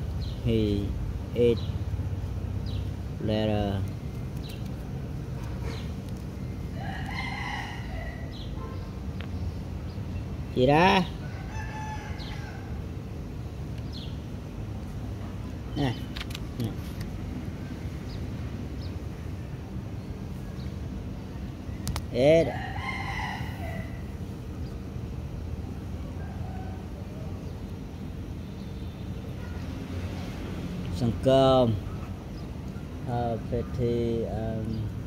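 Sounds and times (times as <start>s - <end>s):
rooster crowing: 6.7s - 8.5s, 11.2s - 12.8s, 22.4s - 24.2s, 26.0s - 27.4s.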